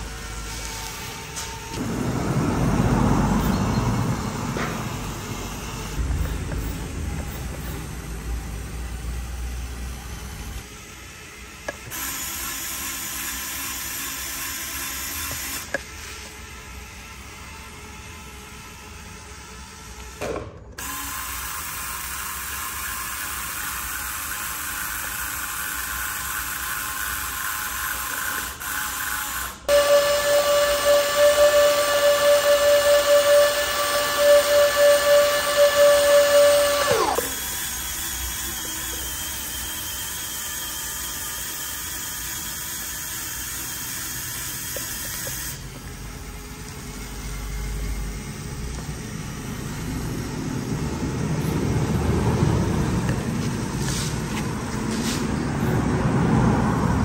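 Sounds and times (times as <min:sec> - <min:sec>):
loud steady whine: 0:00.0 - 0:10.7, 0:29.7 - 0:40.5
low rumble: 0:01.7 - 0:09.2
small electric motor whirring: 0:04.2 - 0:55.7.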